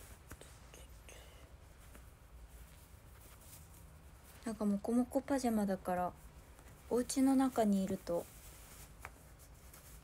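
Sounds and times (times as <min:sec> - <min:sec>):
low room hum: 0:00.0 - 0:10.0
faint whispering: 0:00.3 - 0:01.7.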